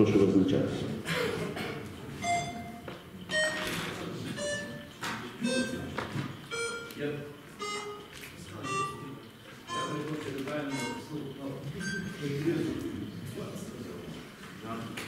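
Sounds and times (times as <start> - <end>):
short electronic beeps: 2.2 - 3.8, 4.4 - 5.9, 6.5 - 7.0, 7.6 - 10.0, 10.7 - 11.1, 11.8 - 12.2
murmuring voices: 3.2 - 14.4.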